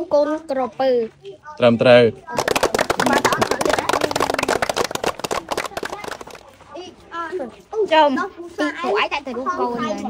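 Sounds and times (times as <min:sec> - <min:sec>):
voice: 0:02.3 - 0:04.7.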